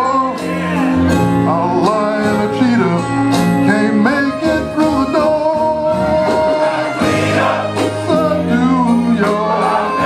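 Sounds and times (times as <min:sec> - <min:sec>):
instrumental backing: 0:00.0 - 0:10.0
men's choir singing gospel: 0:00.0 - 0:10.0.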